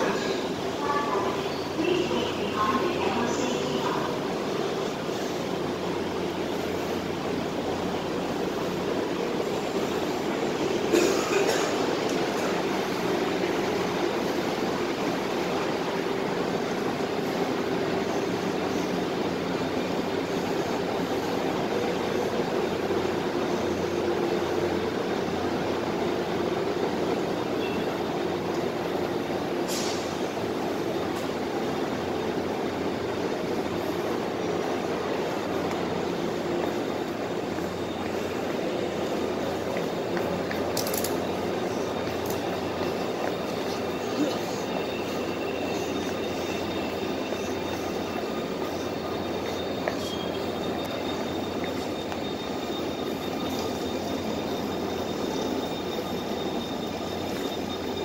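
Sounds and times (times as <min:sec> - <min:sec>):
diesel train engine droning: 0:00.0 - 0:58.0
train clatter: 0:10.4 - 0:18.6, 0:21.5 - 0:58.0.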